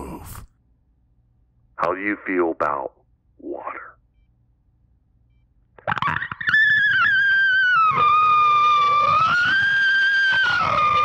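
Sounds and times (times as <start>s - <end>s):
distorted high-pitched screech: 5.9s - 11.0s.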